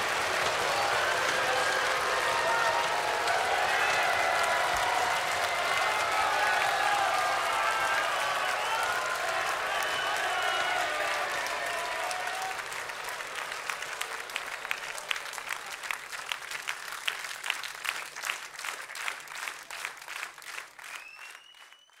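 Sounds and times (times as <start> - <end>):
audience applauding: 0.0 - 22.0
rhythmic clapping: 0.0 - 22.0
faint high whistle-like tone: 21.0 - 22.0.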